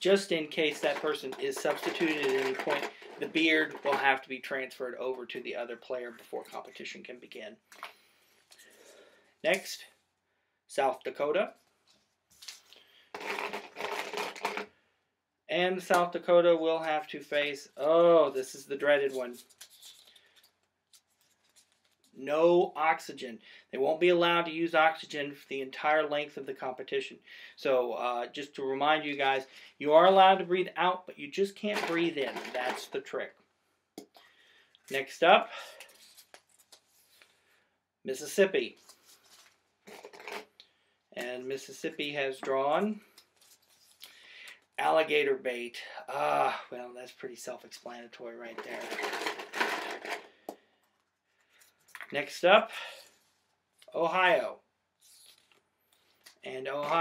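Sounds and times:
paper rustling in hands: 0.1s - 4.2s, 18.8s - 22.2s, 34.9s - 37.3s, 38.8s - 40.5s, 43.0s - 44.1s.

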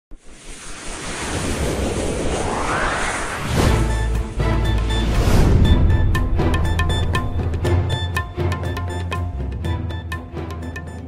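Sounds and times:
whooshing wind-like hiss: 0.2s - 3.8s.

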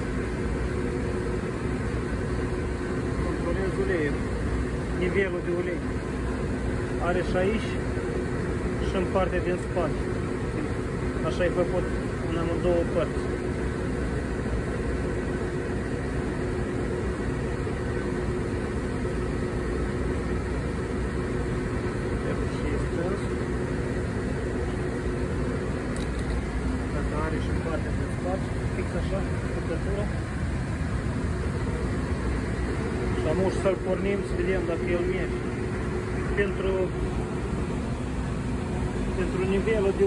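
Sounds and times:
faint droning hum: 0.0s - 40.0s
machinery rumbling: 0.0s - 40.0s
man speaking: 26.8s - 30.2s, 33.0s - 35.5s, 36.2s - 37.0s, 39.1s - 40.0s.

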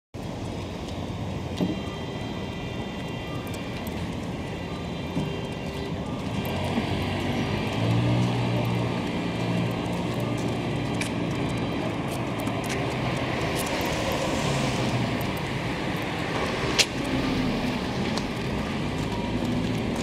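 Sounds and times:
cars passing on road: 0.2s - 20.0s.

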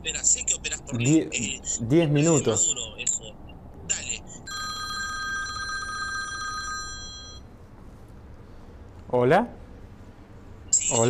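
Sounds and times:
warbling electronic phone ringtone: 3.9s - 7.5s.

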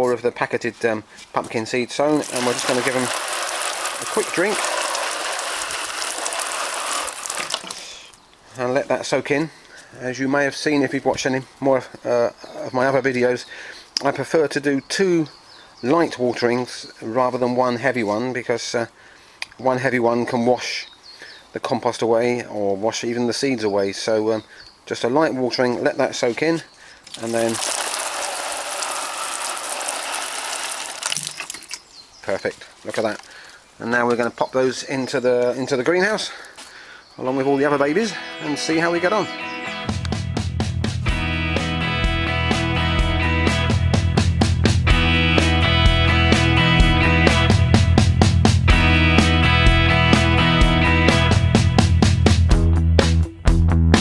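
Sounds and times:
hose nozzle spraying water: 2.1s - 7.9s, 27.1s - 31.8s
droplets pattering on wet soil: 2.1s - 8.2s, 27.0s - 31.9s, 32.6s - 34.3s.

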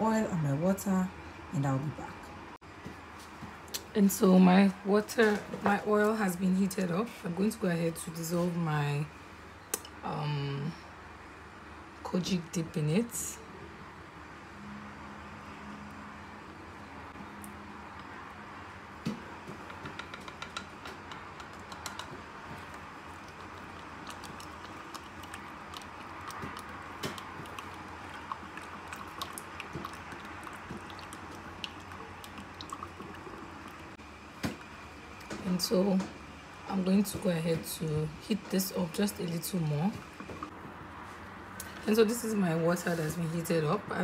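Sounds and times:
steady low hum: 0.0s - 44.0s.

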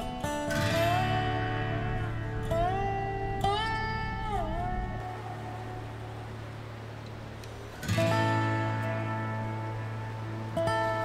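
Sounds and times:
guitar music: 0.0s - 11.0s.

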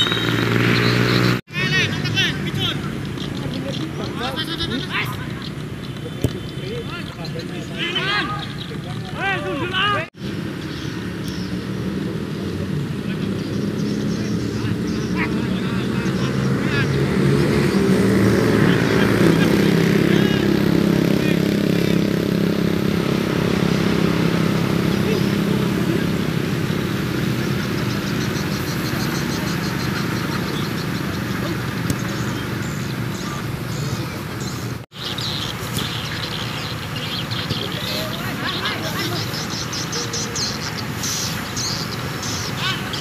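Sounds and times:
engine-like drone: 0.0s - 6.8s, 10.2s - 43.0s.

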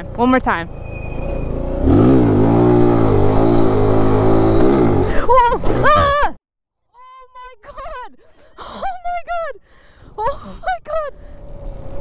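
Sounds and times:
motorbike engine revving: 0.0s - 6.2s.

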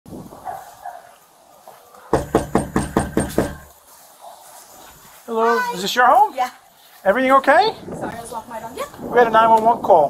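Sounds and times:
knocking on front door: 2.1s - 3.7s.

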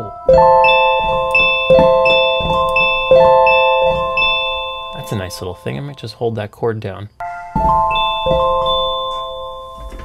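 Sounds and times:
keyboard chord held: 0.0s - 6.1s.

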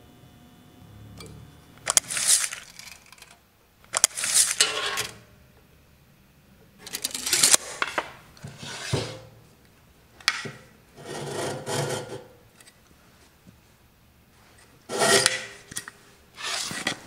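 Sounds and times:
wooden boards scraping on concrete: 7.5s - 9.2s, 14.9s - 15.5s, 16.4s - 17.0s.

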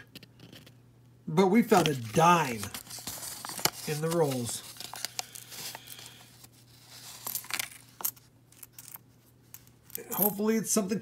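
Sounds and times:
paper wrapper crinkling: 1.7s - 7.9s
coins clicking: 7.0s - 10.4s.

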